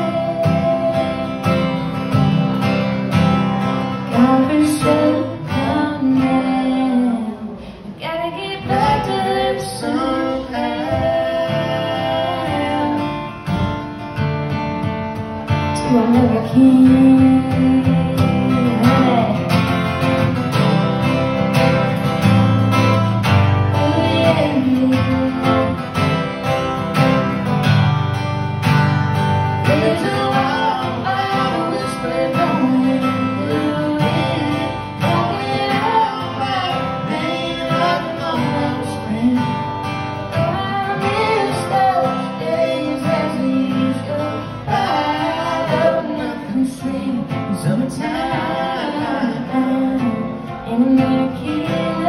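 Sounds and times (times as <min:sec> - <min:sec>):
acoustic guitars strummed live: 0:00.0 - 0:52.0.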